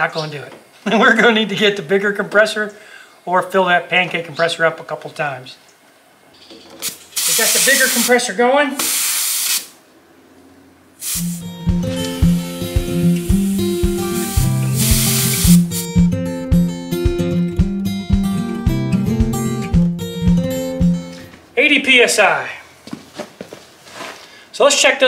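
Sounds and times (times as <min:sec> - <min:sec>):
compressed air hissing: 0:06.8 - 0:08.2, 0:08.8 - 0:09.8, 0:11.0 - 0:16.0
plucked guitar music: 0:11.2 - 0:21.3.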